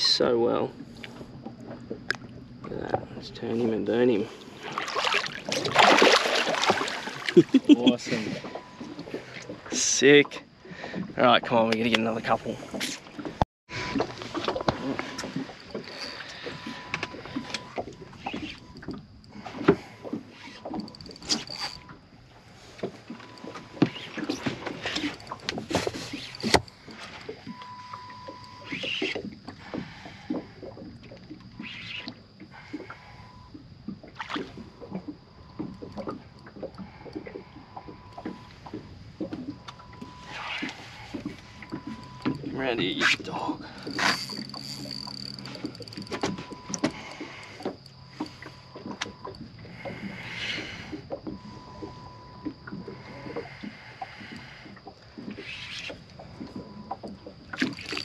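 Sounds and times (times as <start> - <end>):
fishing gear knocks and clicks: 14.0 - 31.5, 35.0 - 49.5, 56.3 - 58.0.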